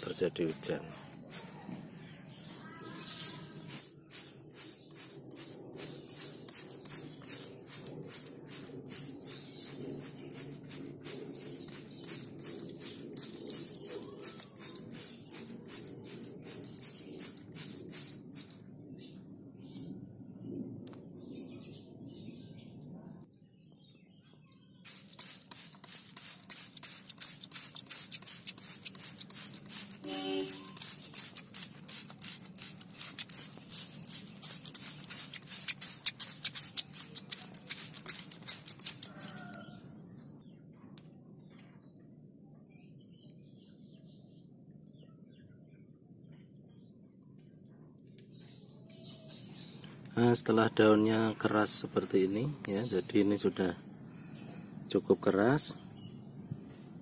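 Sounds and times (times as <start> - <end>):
trigger sprayer hissing: 24.9 - 39.4.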